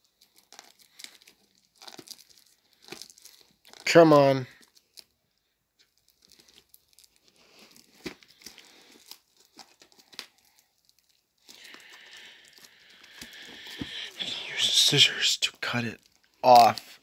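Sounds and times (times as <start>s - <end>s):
plastic shrink-wrap crackling: 0.0s - 14.1s, 15.8s - 17.0s.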